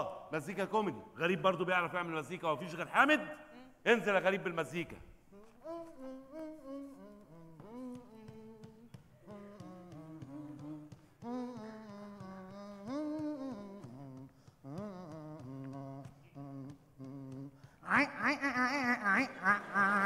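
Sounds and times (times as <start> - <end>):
man humming a tune: 5.3 - 20.0.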